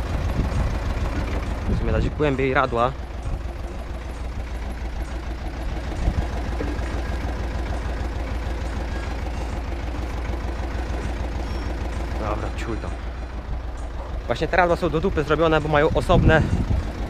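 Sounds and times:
tractor engine running: 0.0 - 17.0.

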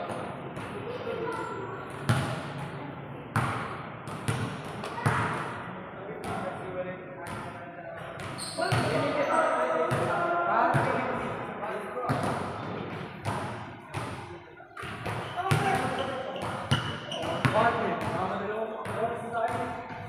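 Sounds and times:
voices talking and calling out: 0.0 - 3.4, 4.8 - 20.0
basketballs bouncing on court: 1.9 - 2.4, 3.3 - 5.5, 8.2 - 9.1, 12.1 - 20.0.

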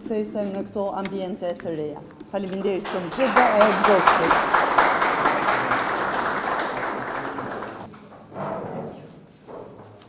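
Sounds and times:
audience applauding: 2.6 - 7.9.

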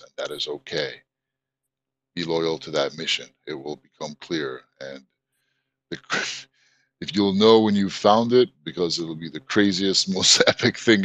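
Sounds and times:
man speaking: 0.0 - 1.0, 2.2 - 5.0, 5.9 - 6.4, 7.0 - 11.0.

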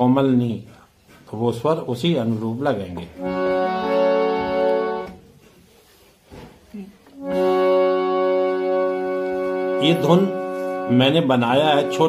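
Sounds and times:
harmonium held notes: 3.1 - 5.3, 7.2 - 12.0.

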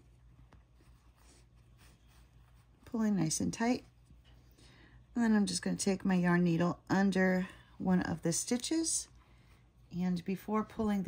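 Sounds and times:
yarn rustling through stitches: 0.0 - 4.5
woman's voice: 2.9 - 3.9, 5.2 - 9.1, 9.9 - 11.0.

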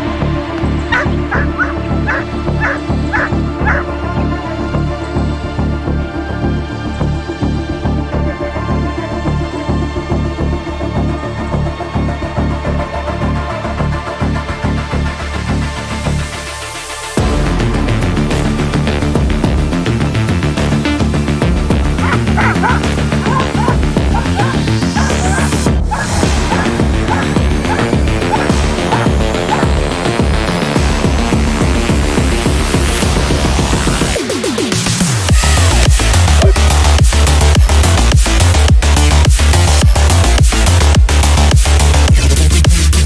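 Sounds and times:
background music with steady beat: 0.0 - 43.0
dog barking: 0.9 - 3.8, 22.0 - 29.8.

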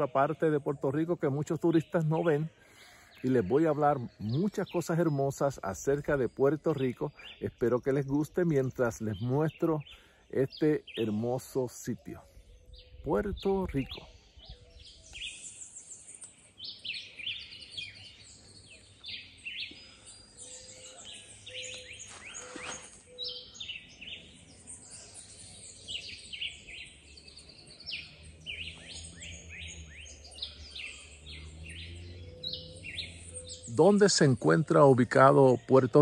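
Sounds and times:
birds chirping and calling: 0.0 - 36.0.

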